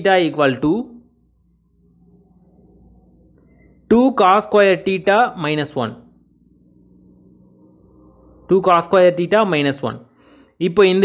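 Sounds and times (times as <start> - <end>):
faint high-pitched trill: 0.0 - 10.5
low steady hum: 0.0 - 11.0.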